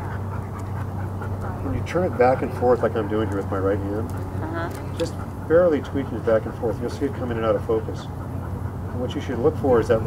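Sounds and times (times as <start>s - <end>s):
dog panting: 0.0s - 10.0s
steady low hum: 0.0s - 10.0s.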